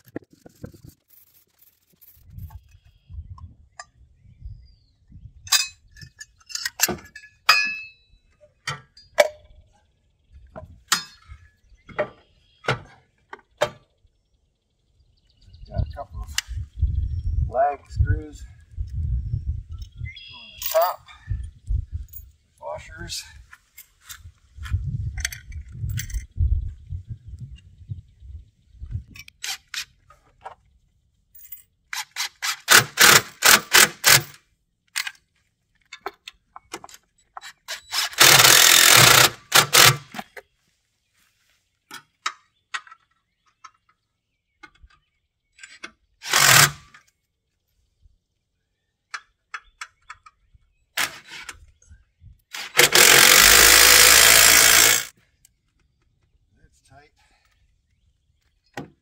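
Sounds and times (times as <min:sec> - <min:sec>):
power driver bursts: 0:52.6 - 0:55.1.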